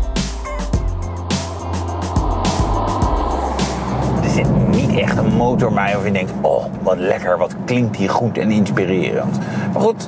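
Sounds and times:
background music with beat: 0:00.0 - 0:05.0
car driving past: 0:00.4 - 0:07.0.

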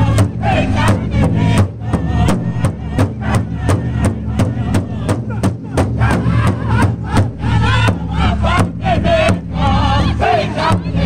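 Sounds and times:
group singing in high wavering voices: 0:00.0 - 0:11.0
large drum beat: 0:00.0 - 0:11.0.

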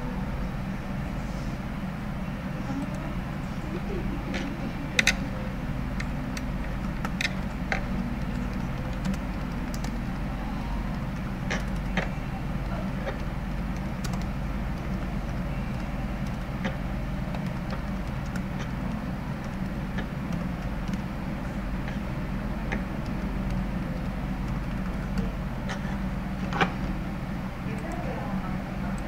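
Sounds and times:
low background hum: 0:00.0 - 0:29.0
keyboard keys clicking: 0:02.7 - 0:29.0.

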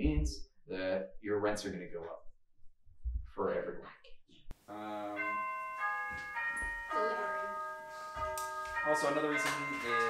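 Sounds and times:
doorbell chime: 0:04.8 - 0:10.0.

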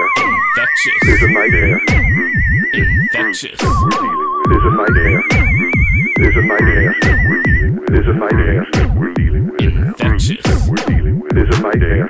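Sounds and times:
swooping synth bass: 0:00.0 - 0:09.4.

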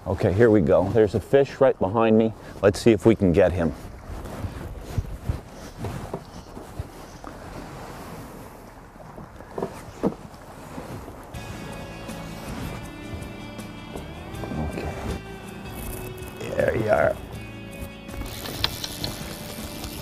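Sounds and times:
water around boat: 0:00.0 - 0:20.0
wind on microphone: 0:03.7 - 0:08.7
background music sustained tones: 0:11.3 - 0:20.0.

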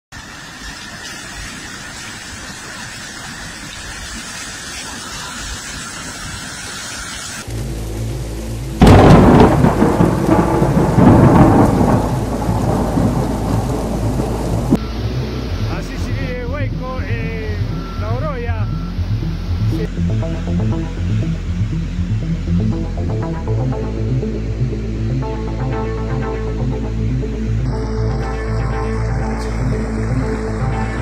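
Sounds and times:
rain and floodwater rushing: 0:00.1 - 0:31.0.

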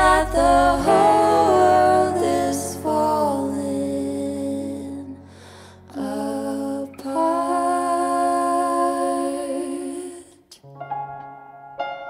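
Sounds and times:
woman singing long notes: 0:00.0 - 0:05.3
keyboard: 0:00.0 - 0:09.8.

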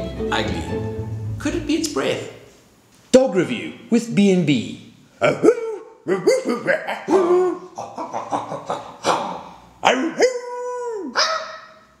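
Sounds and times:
dog howling: 0:09.9 - 0:11.8.

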